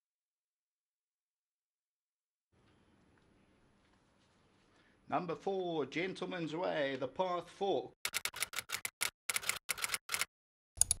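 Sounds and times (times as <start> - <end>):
typing key clicks: 8.1 - 11.0.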